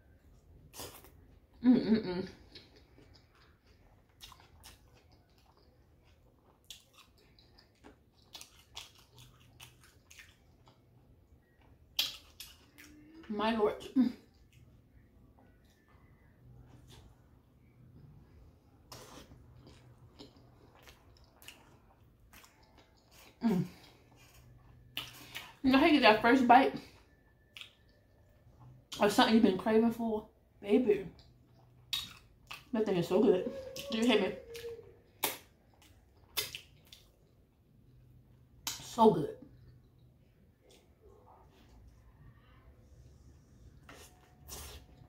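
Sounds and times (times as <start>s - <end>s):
faint chewing: 0.2s - 1.6s, 2.3s - 25.6s, 26.8s - 29.0s, 31.1s - 32.7s, 33.6s - 45.0s.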